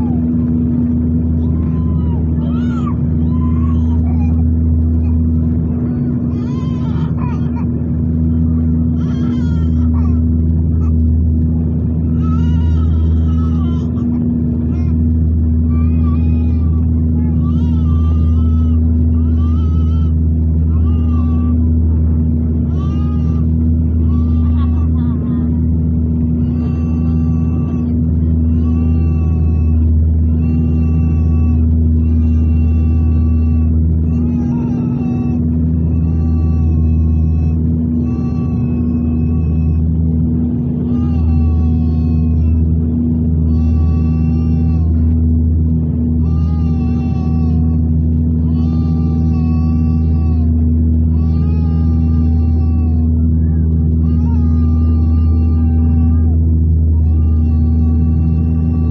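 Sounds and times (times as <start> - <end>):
aircraft engines droning in cabin: 0.0 - 58.9.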